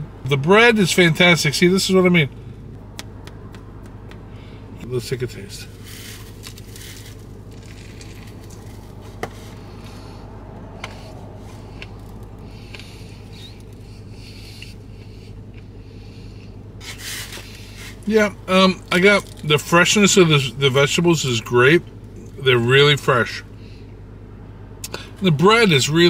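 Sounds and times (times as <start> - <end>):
low hum: 0.0 - 25.4
man chewing crunchy food: 19.2 - 19.4.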